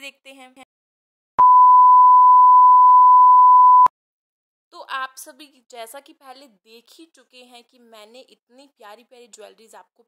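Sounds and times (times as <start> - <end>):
high electronic beep: 1.4 - 3.9.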